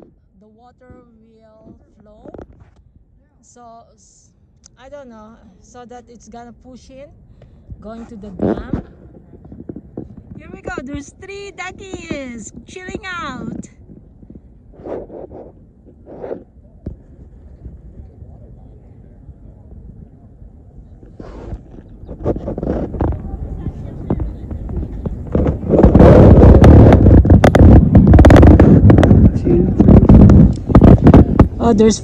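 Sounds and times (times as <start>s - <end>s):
wind buffeting microphone: 6.2s - 32.0s.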